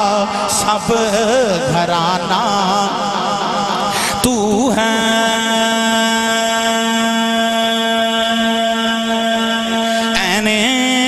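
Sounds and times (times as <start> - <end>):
man singing a long note: 0.0 - 11.0.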